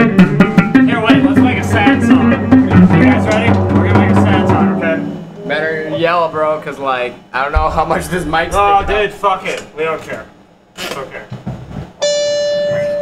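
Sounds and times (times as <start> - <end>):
rock band playing: 0.0 - 5.4
man talking: 0.9 - 2.3, 3.0 - 11.3.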